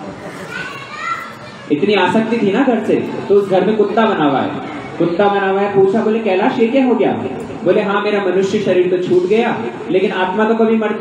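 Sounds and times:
children chattering faintly: 0:00.0 - 0:06.7.

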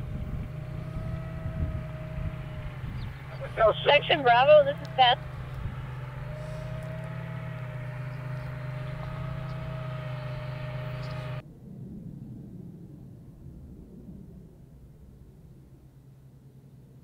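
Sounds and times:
thin steady whine: 0:00.0 - 0:11.4
faint low rumble: 0:00.0 - 0:17.0
vehicle engine drone: 0:00.0 - 0:17.0.

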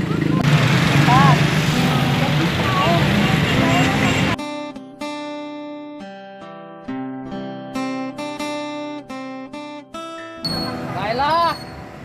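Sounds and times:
people's voices: 0:00.0 - 0:04.4
steady traffic: 0:00.0 - 0:04.4, 0:10.4 - 0:12.0.

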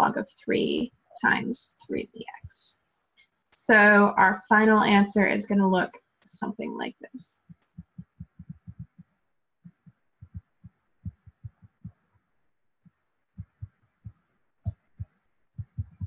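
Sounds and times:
stylus tapping tablet screen: 0:07.4 - 0:12.2, 0:12.9 - 0:16.0.

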